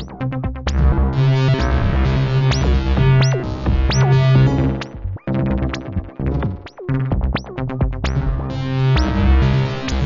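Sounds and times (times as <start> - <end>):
pulsing synthesizer bass line: 0.0 - 10.0
synthesizer zaps sweeping down: 0.8 - 5.0.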